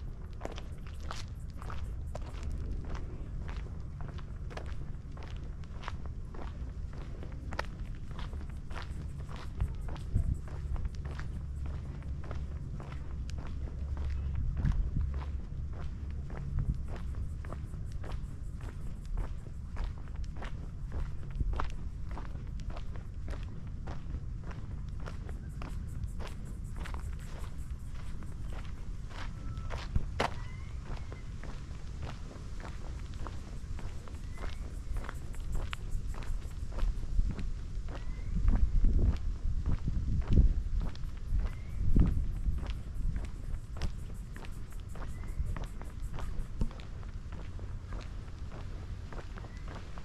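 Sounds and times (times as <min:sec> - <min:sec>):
footsteps on gritty asphalt: 0:00.0 - 0:50.0.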